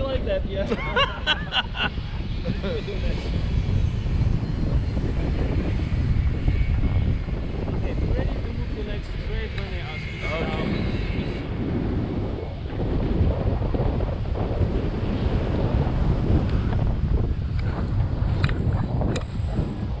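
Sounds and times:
wind rushing on microphone: 0.0 - 20.0.

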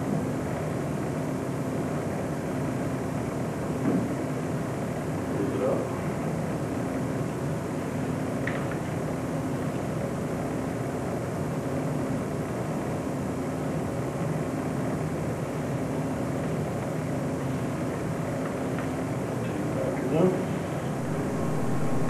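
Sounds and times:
low hum: 20.8 - 22.0.

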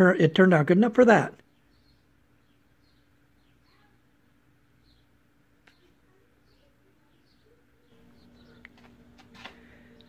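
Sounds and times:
faint steady hum: 0.0 - 10.0
high falling bird chirps: 1.4 - 10.0.

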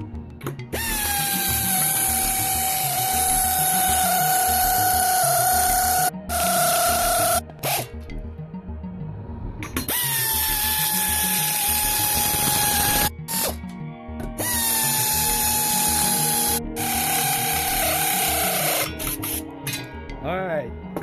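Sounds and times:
background music with steady beat: 0.0 - 21.0
power drill whining: 0.7 - 7.8, 9.9 - 13.6, 14.4 - 19.2.

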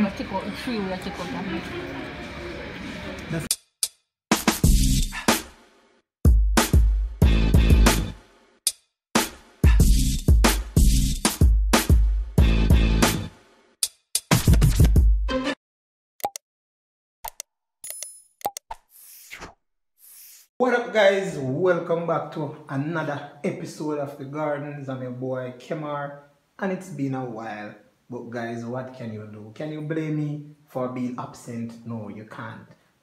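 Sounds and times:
restaurant chatter: 0.0 - 3.5
quick clicks and pops: 17.2 - 19.6.

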